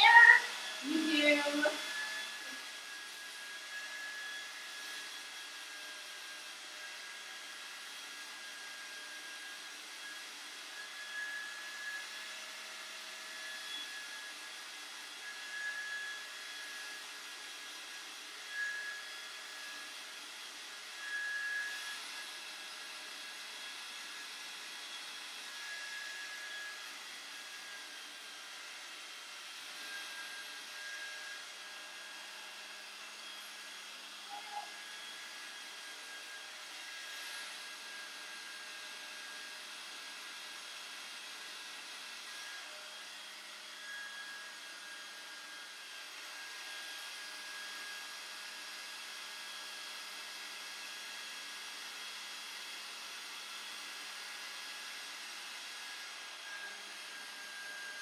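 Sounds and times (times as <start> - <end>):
hair dryer running: 0.0 - 49.2.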